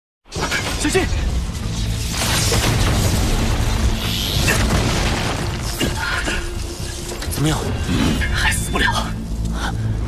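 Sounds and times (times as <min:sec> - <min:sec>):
film score music: 0:00.2 - 0:10.0
crackling lightning: 0:00.5 - 0:07.5.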